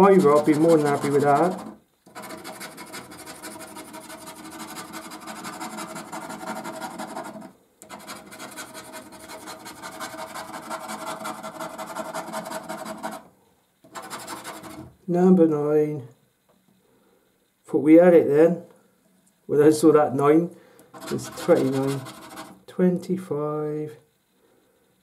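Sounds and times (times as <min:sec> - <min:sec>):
coin scraping scratchcard: 0:00.0 - 0:13.2, 0:13.9 - 0:15.0, 0:20.9 - 0:22.6.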